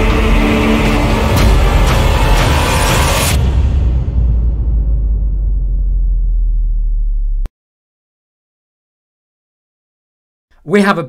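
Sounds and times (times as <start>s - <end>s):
deep cinematic rumble: 0.0s - 7.5s.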